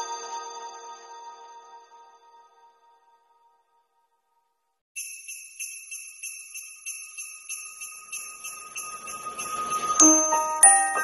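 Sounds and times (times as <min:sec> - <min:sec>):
tinkling sleigh rattle shaken: 0:05.0 - 0:11.0.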